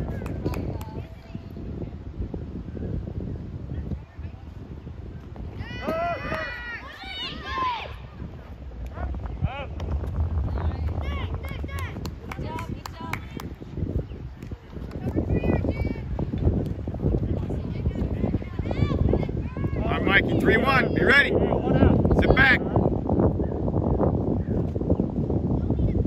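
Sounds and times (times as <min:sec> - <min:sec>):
wind rumble on microphone: 0:00.0 - 0:26.0
people clapping: 0:00.1 - 0:01.0, 0:10.8 - 0:13.6
people shouting and cheering: 0:05.6 - 0:09.7.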